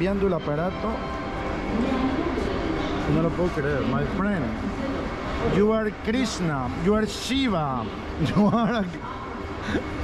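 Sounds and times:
station crowd hubbub: 0.0s - 10.0s.

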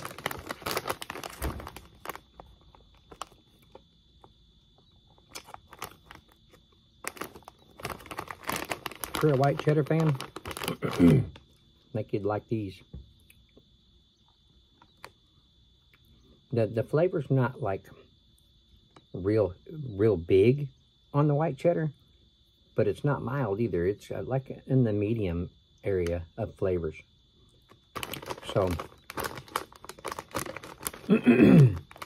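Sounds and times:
plastic snack bag crinkling: 0.0s - 11.6s, 27.7s - 32.0s.

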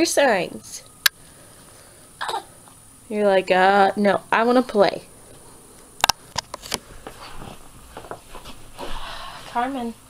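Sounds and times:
soft rustling: 6.5s - 9.9s.

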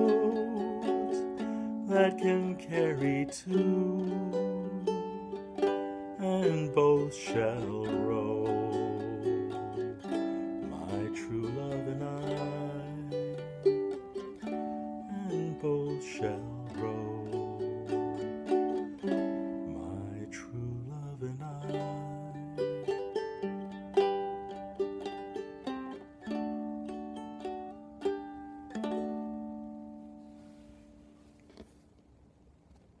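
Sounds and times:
man singing: 0.0s - 23.5s
ukulele melody: 0.0s - 31.8s.

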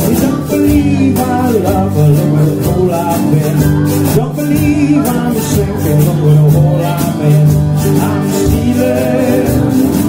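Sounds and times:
bass line: 0.0s - 10.0s
guitars and mandolin: 0.0s - 10.0s.

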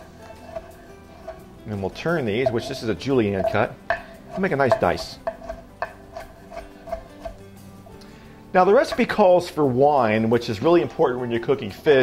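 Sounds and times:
knife chopping on wooden board: 2.4s - 7.4s.

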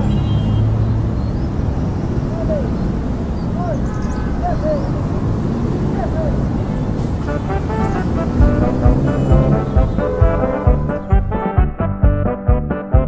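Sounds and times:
cumbia music with brass: 7.0s - 13.0s
steady bass drum beat: 8.0s - 13.0s
low rumble: 8.4s - 11.6s
indistinct crowd voices: 9.1s - 11.4s.

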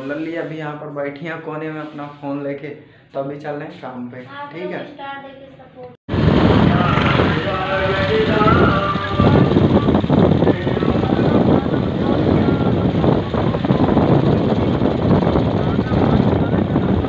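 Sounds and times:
road noise: 6.1s - 17.0s
vehicle engine: 6.1s - 17.0s
wind rushing over microphone: 6.1s - 17.0s.

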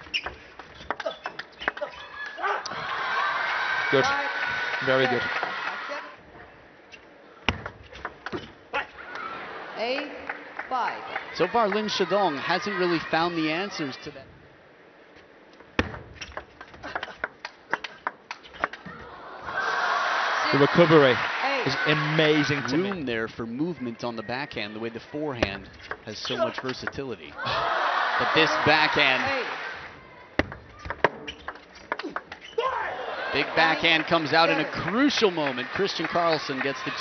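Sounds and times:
voices: 32.1s - 37.0s.

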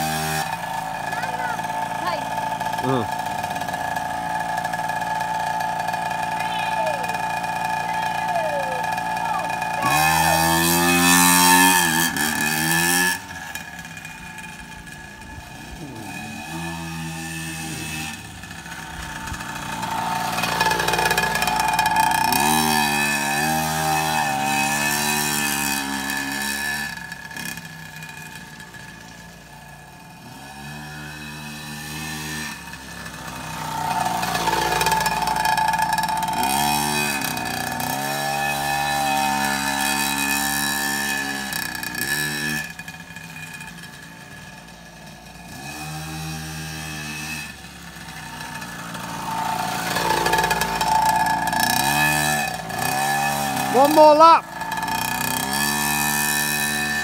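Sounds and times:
two-stroke motorbike engine revving: 0.0s - 57.0s.

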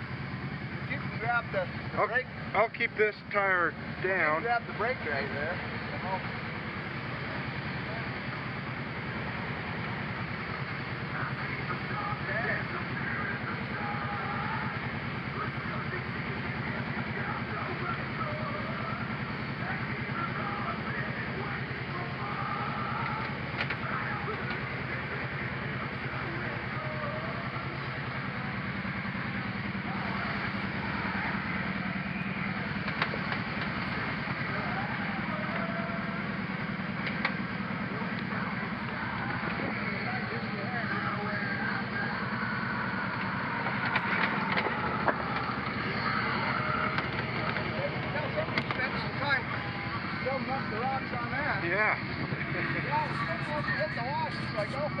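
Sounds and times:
atv engine running: 0.0s - 55.0s.

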